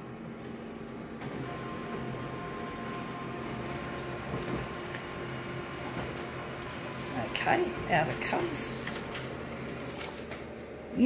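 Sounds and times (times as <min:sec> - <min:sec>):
photocopier humming: 0:00.0 - 0:11.0.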